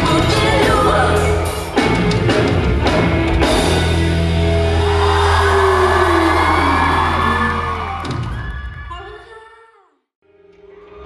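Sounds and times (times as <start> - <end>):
pop song over concert pa: 0.0 - 3.9
audience whooping and shouting: 3.8 - 9.3.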